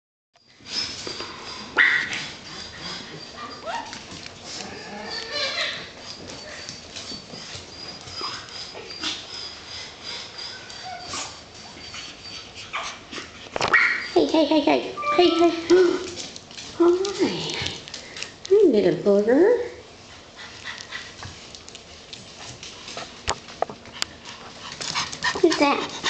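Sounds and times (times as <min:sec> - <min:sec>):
puppies whimpering and yipping: 0:00.5 - 0:16.2.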